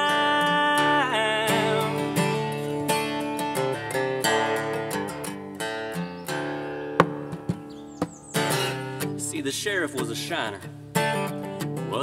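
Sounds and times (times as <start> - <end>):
acoustic guitar strummed: 0.0 - 12.0.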